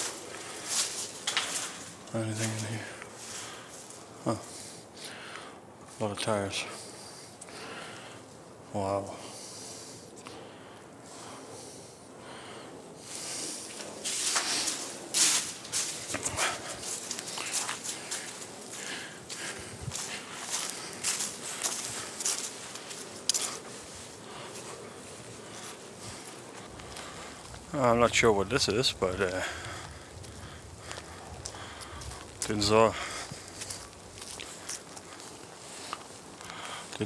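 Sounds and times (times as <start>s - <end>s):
footsteps crunching dry leaves: 0.0s - 4.6s, 13.1s - 37.0s.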